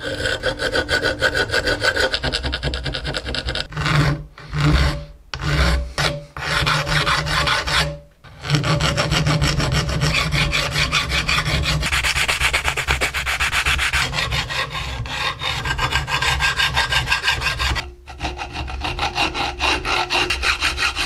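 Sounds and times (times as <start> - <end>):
file rasping on steel: 0.0 - 21.0.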